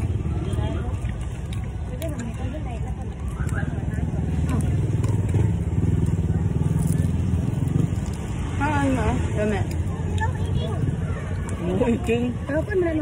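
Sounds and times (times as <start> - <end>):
vehicle engine rumbling: 0.0 - 13.0.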